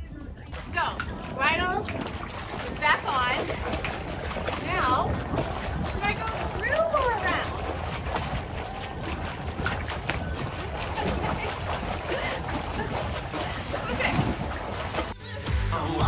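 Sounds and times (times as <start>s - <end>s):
music: 0.0s - 1.9s, 14.9s - 16.0s
water splashing and sloshing: 0.0s - 15.5s.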